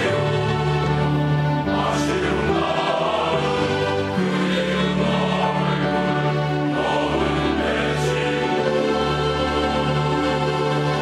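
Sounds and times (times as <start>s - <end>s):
male choir singing in harmony: 0.0s - 11.0s.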